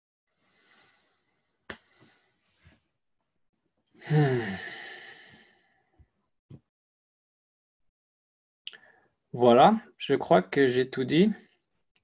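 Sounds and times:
man sighing: 4.0 - 5.5.

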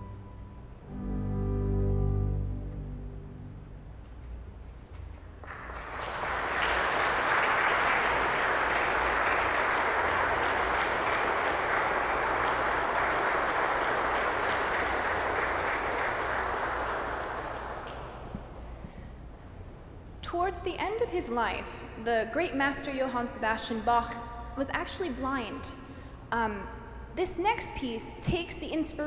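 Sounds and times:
audience applauding: 5.4 - 18.6.

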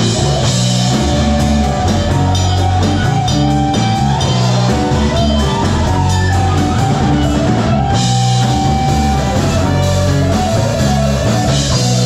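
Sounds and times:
bass guitar: 0.0 - 12.0
drum kit: 0.0 - 12.0
electric guitar: 0.0 - 12.0
keyboard: 0.0 - 12.0.

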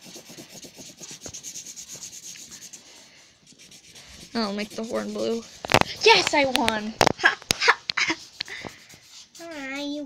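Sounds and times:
pencil scribbling on paper: 0.0 - 6.5, 8.0 - 10.0.

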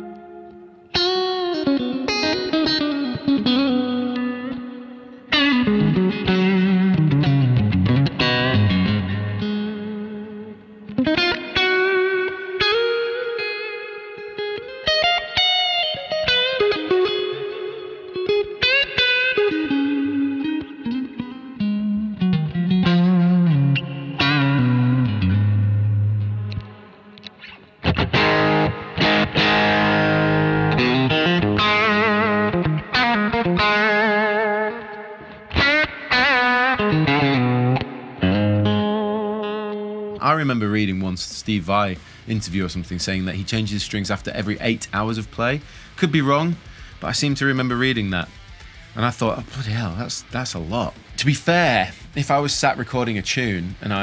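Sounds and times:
electric guitar lead playing: 0.0 - 54.0.

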